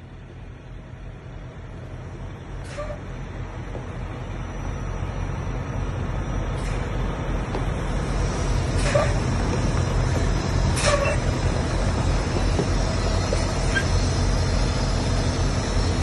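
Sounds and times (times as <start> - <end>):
diesel truck engine rumbling: 0.0 - 16.0.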